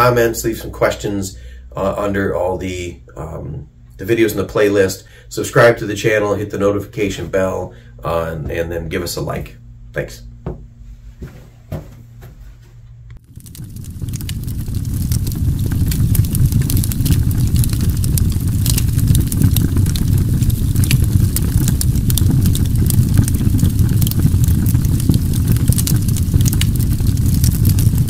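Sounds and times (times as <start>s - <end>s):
scattered crackles and clicks: 13.1s - 28.0s
loud low rumble: 13.2s - 28.0s.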